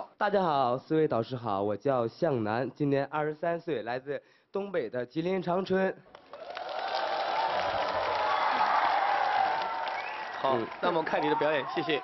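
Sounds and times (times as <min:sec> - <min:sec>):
audience applauding and cheering: 0:06.1 - 0:12.0.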